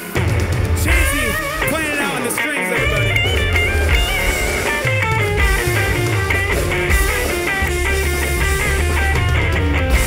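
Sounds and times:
electric guitar solo: 0.0s - 10.0s
live rock band playing: 0.0s - 10.0s.

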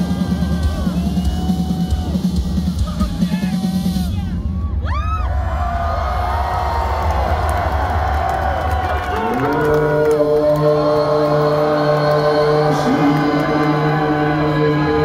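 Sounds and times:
crowd cheering and whooping: 0.0s - 2.6s, 3.6s - 15.0s.

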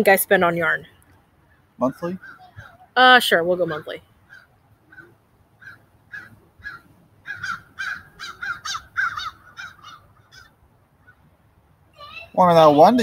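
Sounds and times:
bird calling: 0.6s - 13.0s.

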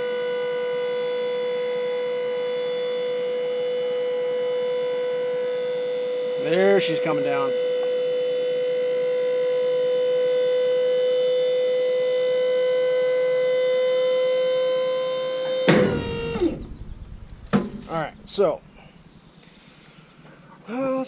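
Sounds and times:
hydraulic pump whining: 0.0s - 20.0s
loud clunk: 15.6s - 19.0s.

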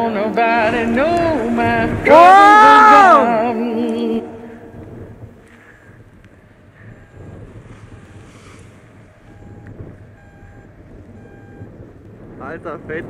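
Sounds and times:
wind rumbling on microphone: 0.0s - 13.0s
faint short beeps: 9.3s - 11.7s.

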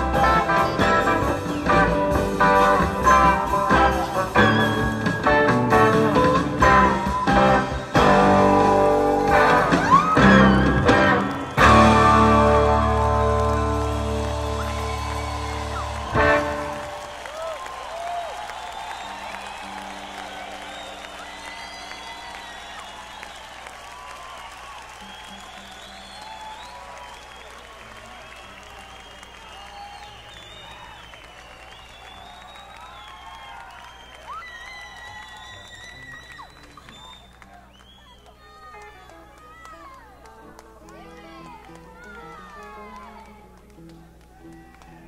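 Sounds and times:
audience applauding and cheering: 0.0s - 45.0s
rock band final chord ringing: 10.5s - 17.1s.

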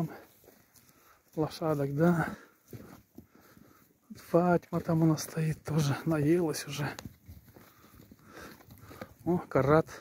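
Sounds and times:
footsteps on snow: 0.0s - 10.0s.

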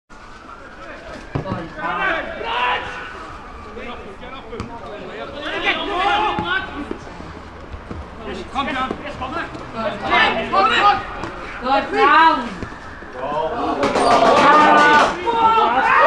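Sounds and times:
players shouting: 0.4s - 7.0s, 8.1s - 16.0s
ball being kicked: 1.3s - 1.7s.

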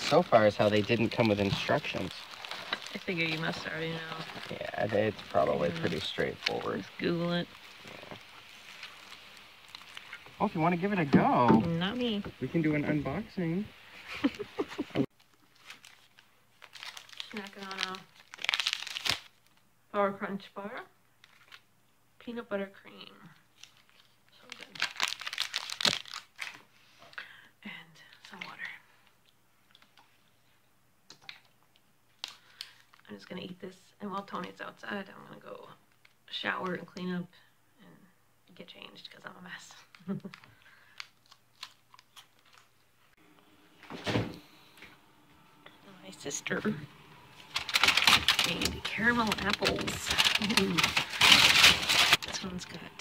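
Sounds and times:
plastic wrapper crinkling: 0.0s - 10.4s, 15.2s - 19.6s, 21.2s - 21.7s, 23.5s - 26.6s, 32.2s - 33.1s, 39.8s - 42.8s, 46.4s - 53.0s.

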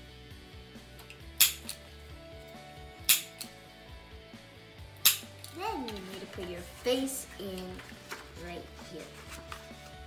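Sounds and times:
stapler snapping through paper: 3.0s - 3.4s.

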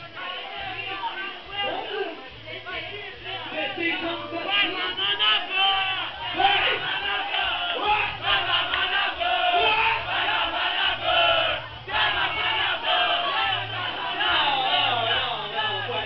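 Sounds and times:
crowd shouting and cheering: 0.0s - 16.0s.

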